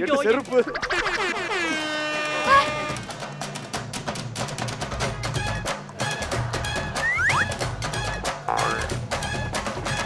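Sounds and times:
air horn tone: 1.3 - 3.1.

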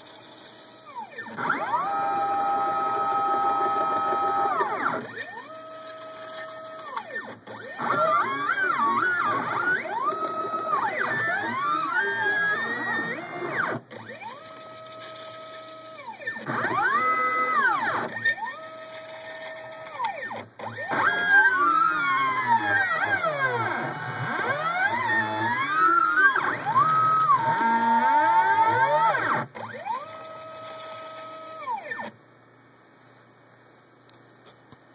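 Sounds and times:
stepper motors whining: 0.0 - 32.2.

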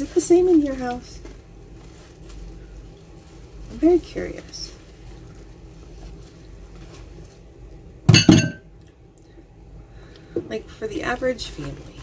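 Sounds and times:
dishes clinking: 8.1 - 8.7.

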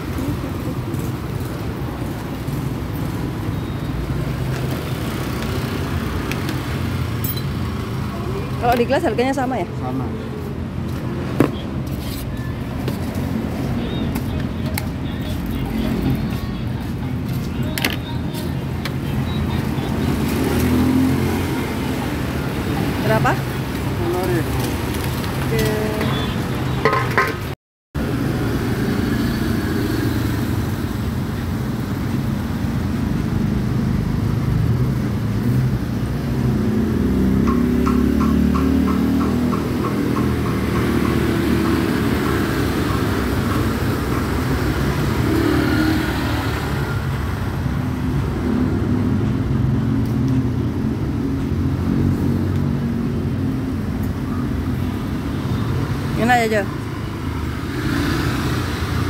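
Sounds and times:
cars and motorcycles passing: 0.0 - 59.0.

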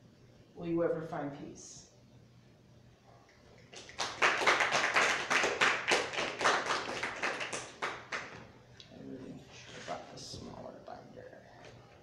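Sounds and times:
small audience clapping: 3.2 - 8.6.

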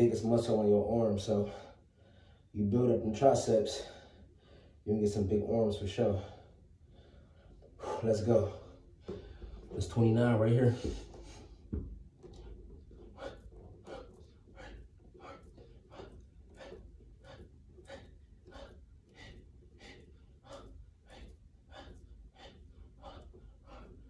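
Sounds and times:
man breathing hard: 1.4 - 2.6, 3.7 - 4.8, 6.2 - 9.8, 10.7 - 24.0.

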